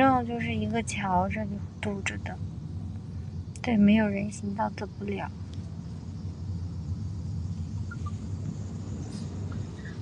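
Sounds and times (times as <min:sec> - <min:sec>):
low rumble inside car: 0:00.0 - 0:10.0.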